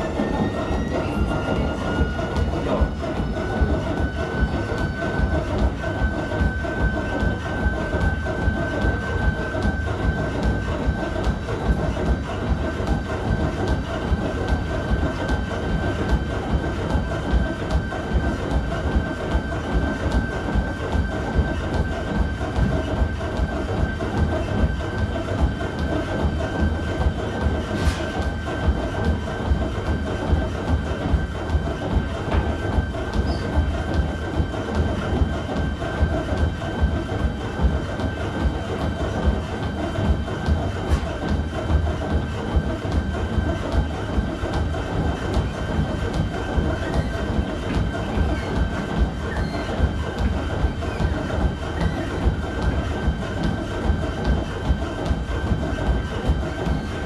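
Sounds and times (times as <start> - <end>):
footfalls on treadmill belt: 0.0 - 57.0
treadmill motor whine: 0.0 - 57.0.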